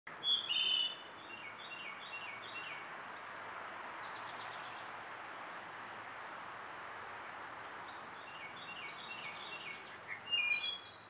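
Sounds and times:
songbirds singing: 0:00.1 - 0:05.8, 0:06.7 - 0:11.0
steady background hiss: 0:00.1 - 0:11.0.

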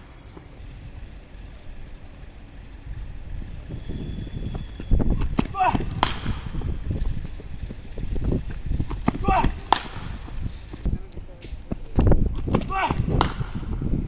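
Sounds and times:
wind buffeting microphone: 0:02.6 - 0:14.0
cricket bat striking ball: 0:05.2 - 0:06.7, 0:08.9 - 0:10.4, 0:12.4 - 0:13.7.

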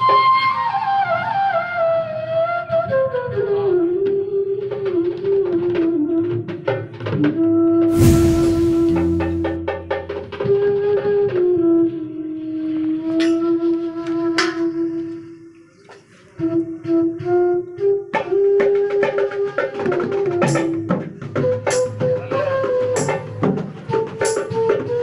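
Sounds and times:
bamboo flute melody: 0:00.0 - 0:25.0
hand-beaten barrel drum: 0:18.1 - 0:25.0.

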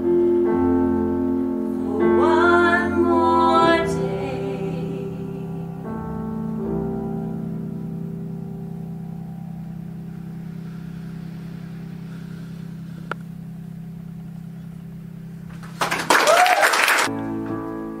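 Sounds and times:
held piano chord: 0:00.0 - 0:15.6, 0:17.1 - 0:18.0
music: 0:00.0 - 0:15.9, 0:17.1 - 0:18.0
applause with whoop: 0:15.6 - 0:17.1.

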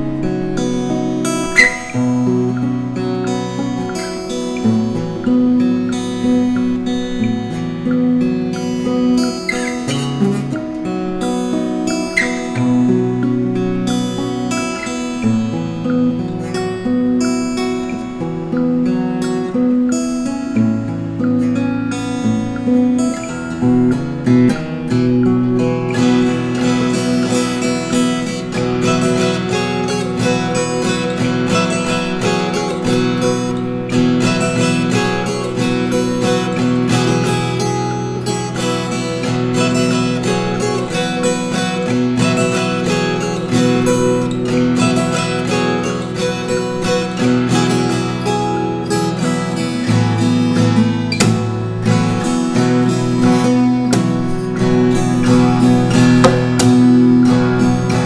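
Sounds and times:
fingerstyle acoustic guitar: 0:00.0 - 0:58.0.

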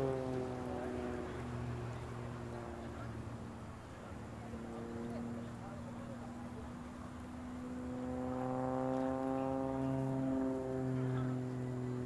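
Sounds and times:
propeller aircraft engine droning: 0:00.0 - 0:12.0.

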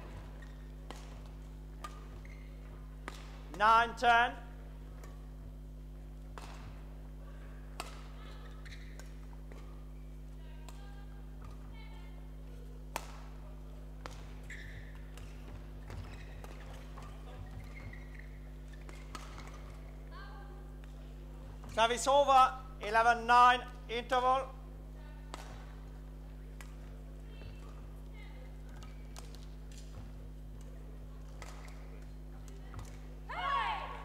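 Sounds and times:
steady hall hum: 0:00.0 - 0:34.0
racket striking shuttlecock: 0:00.5 - 0:02.2, 0:03.0 - 0:03.6, 0:06.3 - 0:06.8, 0:07.7 - 0:09.8, 0:12.9 - 0:13.4, 0:14.0 - 0:19.8, 0:25.3 - 0:25.9, 0:28.6 - 0:33.1.

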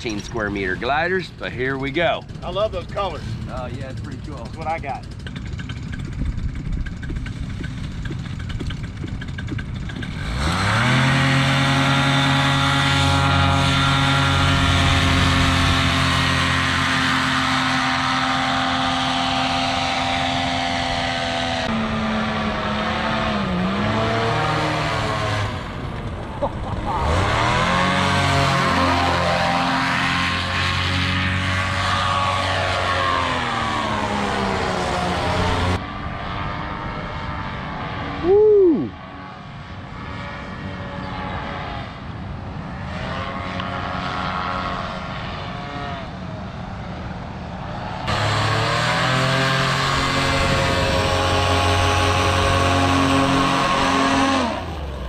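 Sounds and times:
paramotor engine and propeller: 0:00.0 - 0:55.0.

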